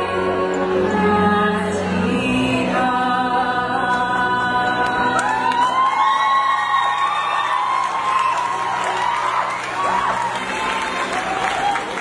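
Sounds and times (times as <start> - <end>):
audience cheering and whooping: 5.2 - 12.0.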